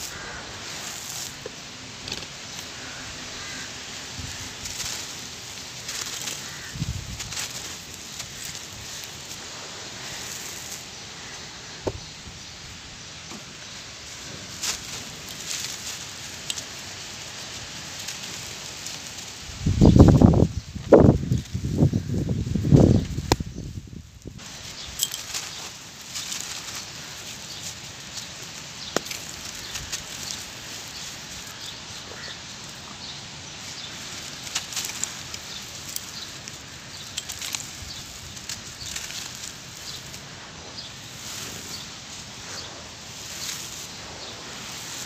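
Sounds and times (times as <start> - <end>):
fine grains crackling down: 0.0 - 45.0
charcoal ash crumbling in hands: 24.3 - 33.0.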